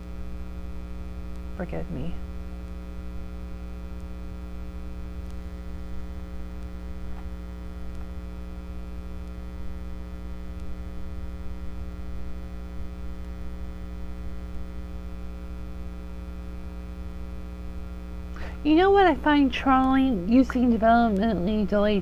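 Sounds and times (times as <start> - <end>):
electrical mains hum: 0.0 - 22.0.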